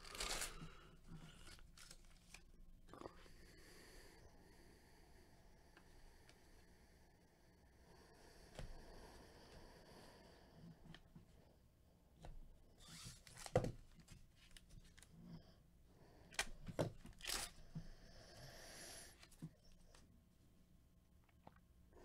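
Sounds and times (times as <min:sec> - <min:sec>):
plastic wrapper tearing: 0:00.0 - 0:00.8.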